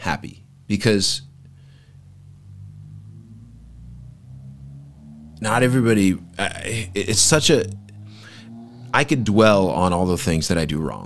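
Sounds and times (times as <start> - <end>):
person speaking: 5.4 - 7.8.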